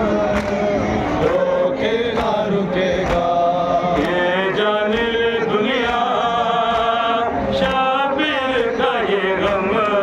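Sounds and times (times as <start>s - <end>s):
man singing through a microphone: 0.0s - 10.0s
men chanting a lament: 0.0s - 10.0s
sharp rhythmic beats: 0.0s - 10.0s.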